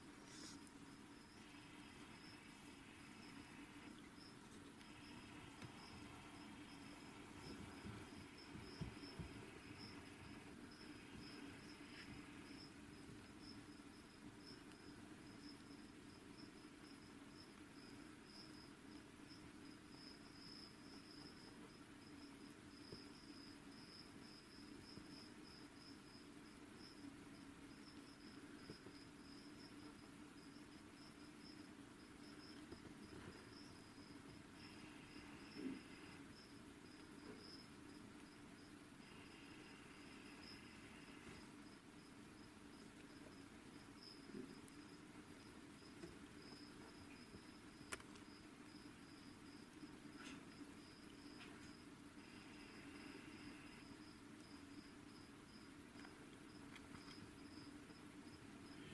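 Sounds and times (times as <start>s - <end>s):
cricket chirping: 0.3s - 58.9s.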